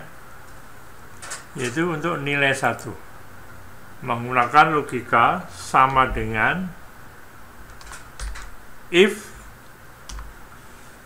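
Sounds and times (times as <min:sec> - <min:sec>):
computer keyboard keystrokes: 0:07.7 - 0:08.5, 0:10.1 - 0:10.3.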